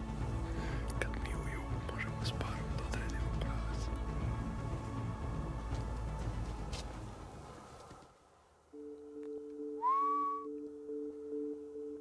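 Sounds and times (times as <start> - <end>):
low droning background music: 0.0 - 9.8
rising whistle: 9.7 - 11.5.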